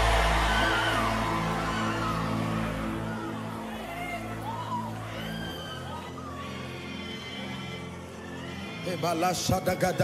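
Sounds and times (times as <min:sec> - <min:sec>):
soft music of low chords: 0:00.0 - 0:10.0.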